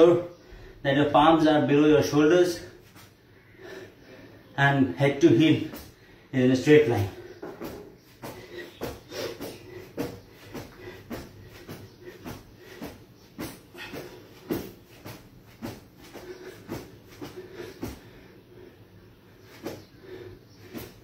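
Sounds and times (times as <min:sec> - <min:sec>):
person breathing: 0:00.3 - 0:00.8, 0:02.8 - 0:04.6, 0:05.8 - 0:06.4, 0:07.1 - 0:21.0
feet thumping on foam mat: 0:07.1 - 0:18.2, 0:19.6 - 0:21.0.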